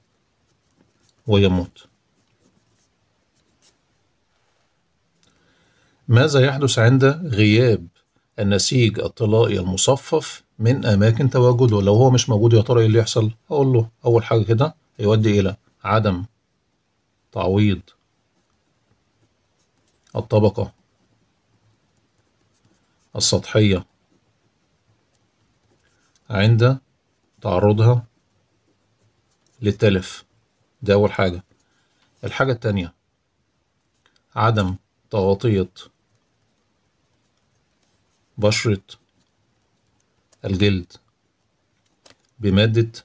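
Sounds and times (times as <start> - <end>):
pen scratching on paper: 0.0 - 4.1, 14.2 - 32.6, 34.8 - 42.3.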